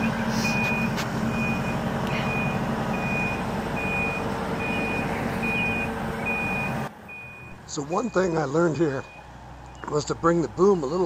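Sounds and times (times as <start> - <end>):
backup alarm beeping: 0.0 - 10.0.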